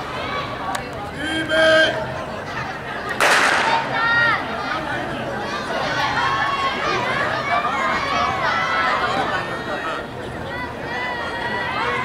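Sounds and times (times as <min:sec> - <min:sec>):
crowd chatter: 0:00.0 - 0:12.0
starting pistol crack: 0:03.2 - 0:03.9.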